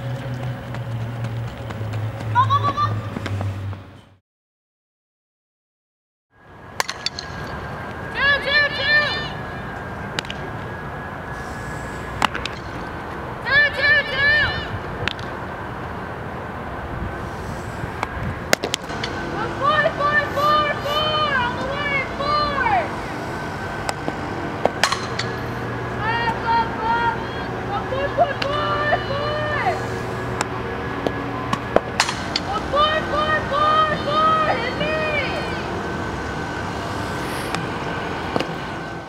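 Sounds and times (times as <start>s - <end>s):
outdoor field noise: 0.0s - 4.2s, 6.3s - 39.0s
sharp knocks of softballs: 18.5s - 18.9s, 31.5s - 32.5s
high rising-and-falling calls: 32.2s - 39.0s.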